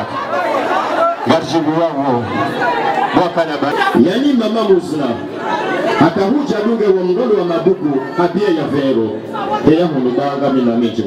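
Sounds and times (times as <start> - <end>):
several people talking at once: 0.0 - 11.0.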